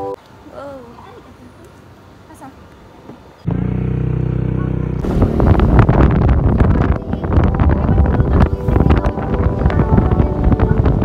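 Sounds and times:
scooter engine running: 3.5s - 9.0s
wind buffeting microphone: 4.3s - 11.0s.

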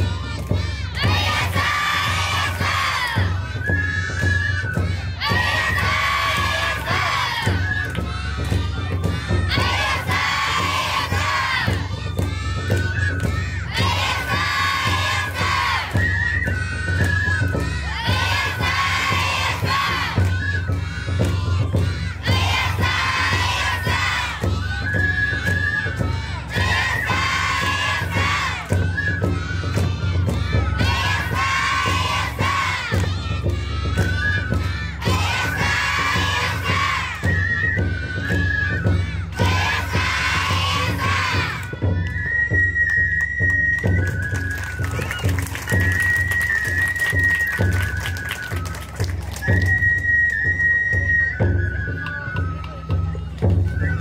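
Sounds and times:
children shouting together: 0.0s - 3.4s, 39.3s - 41.8s
flute-like melody: 0.0s - 54.0s.

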